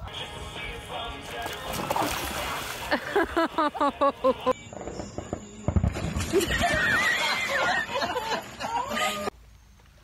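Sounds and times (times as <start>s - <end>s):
splash into pool: 1.4s - 3.2s.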